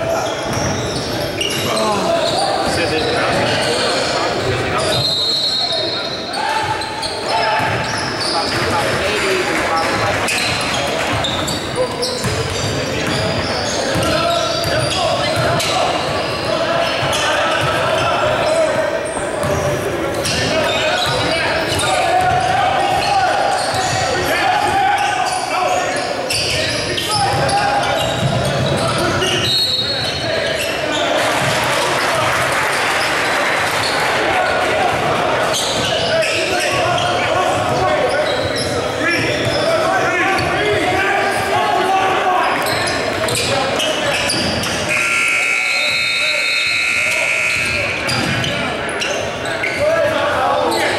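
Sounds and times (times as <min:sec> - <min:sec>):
echoing voices in a gym: 0:00.0 - 0:50.9
basketball bouncing on court: 0:00.3 - 0:03.6, 0:07.4 - 0:09.0, 0:09.7 - 0:18.5, 0:19.1 - 0:24.8, 0:26.6 - 0:29.1, 0:47.5 - 0:48.6.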